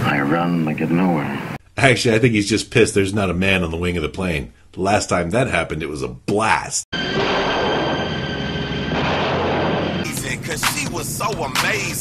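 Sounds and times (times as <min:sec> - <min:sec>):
low hum: 0:07.0 - 0:11.2
high even whine: 0:07.0 - 0:12.0.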